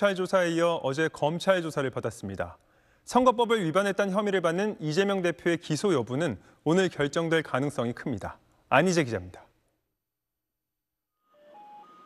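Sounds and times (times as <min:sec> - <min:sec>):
quiet background music: 0:11.2 - 0:12.0.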